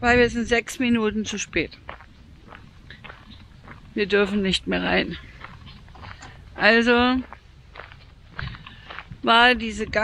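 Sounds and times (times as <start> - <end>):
footsteps on gravel: 0.7 - 10.0.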